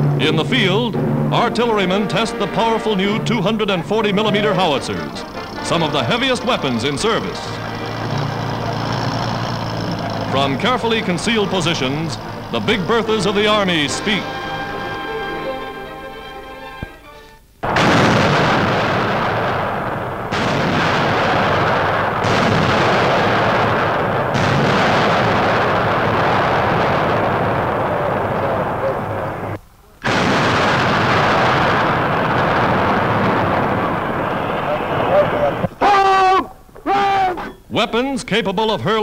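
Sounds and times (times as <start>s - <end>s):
shells bursting: 1.8s - 15.2s, 17.6s - 35.8s
artillery firing: 3.1s - 14.2s, 17.6s - 35.8s.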